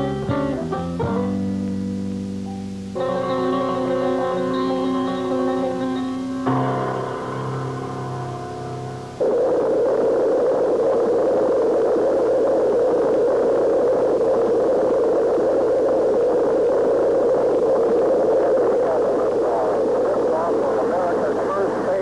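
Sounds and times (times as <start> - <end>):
film music with held notes: 0.0 - 9.2.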